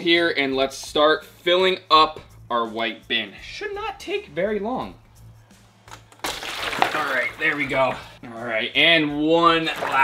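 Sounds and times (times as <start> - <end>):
water pouring into plastic bin: 6.2 - 8.2, 9.6 - 10.0.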